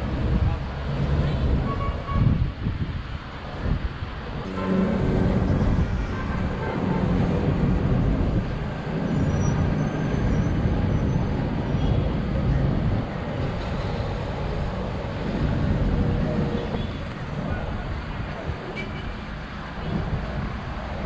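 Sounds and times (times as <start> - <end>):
city traffic rumble: 0.0 - 21.0.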